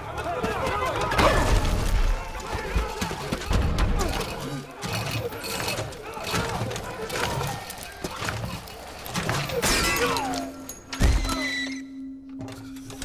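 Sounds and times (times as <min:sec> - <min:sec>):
men shouting: 0:00.0 - 0:10.7.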